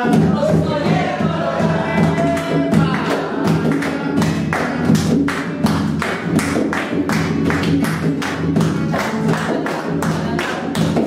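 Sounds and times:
acoustic guitar strummed: 0:00.0 - 0:11.0
hand drumming on guitar body: 0:00.0 - 0:11.0.

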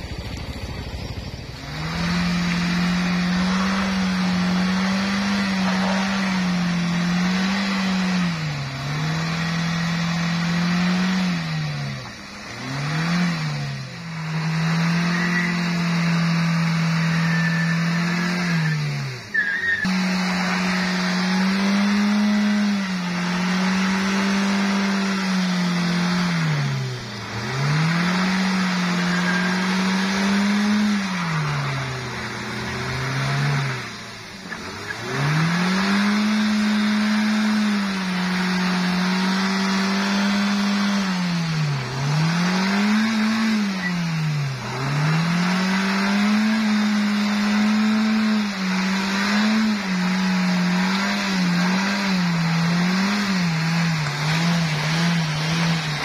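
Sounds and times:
engine revving hard: 0:00.0 - 0:56.0
wheels churning in mud: 0:00.0 - 0:56.0.

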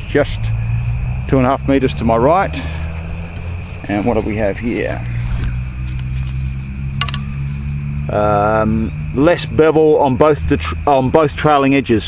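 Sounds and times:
steady low hum: 0:00.0 - 0:12.0
sharp click: 0:07.0 - 0:07.4.

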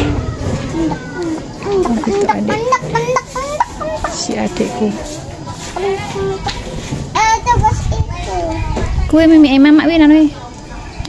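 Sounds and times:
girl talking: 0:00.7 - 0:05.0, 0:05.8 - 0:09.1.

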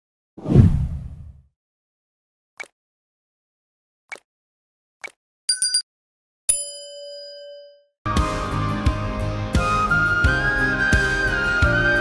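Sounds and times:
whoosh with deep rumble: 0:00.4 - 0:01.4.

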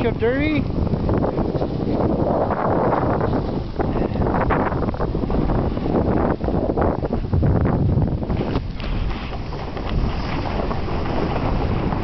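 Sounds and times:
wind rushing over microphone: 0:00.0 - 0:12.0
snowboard scraping on snow: 0:01.1 - 0:12.0.

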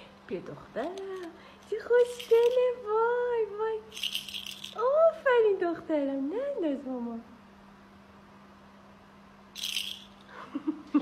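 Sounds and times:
plastic ball toy rattling: 0:01.9 - 0:02.8, 0:03.9 - 0:04.8, 0:09.6 - 0:10.3.

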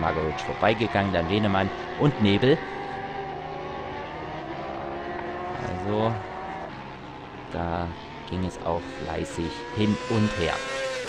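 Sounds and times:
motorcycle engines at high revs: 0:00.0 - 0:11.0.

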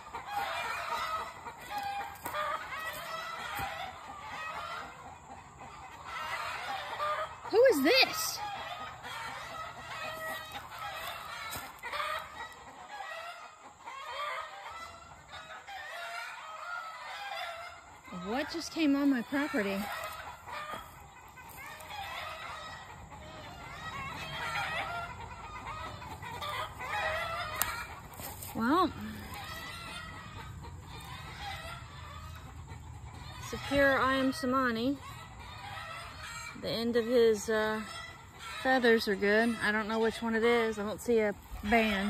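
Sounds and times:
chickens clucking: 0:00.0 - 0:42.0.

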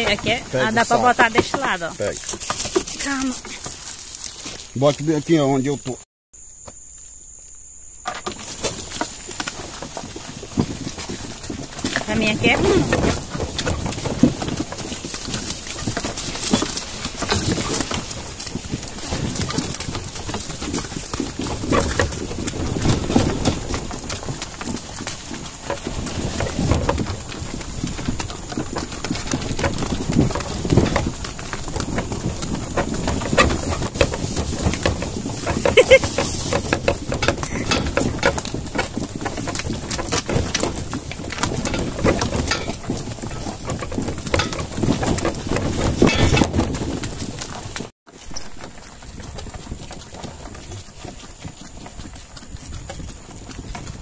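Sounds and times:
hooves clip-clopping on dirt: 0:00.0 - 0:54.0.

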